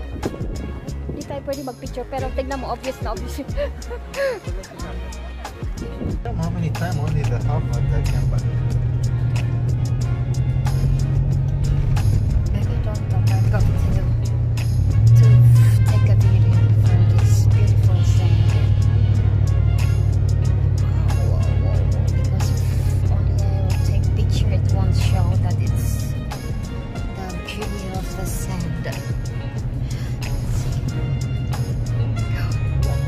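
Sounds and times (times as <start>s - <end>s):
music: 0.0s - 33.0s
off-road vehicle engine under load: 4.7s - 33.0s.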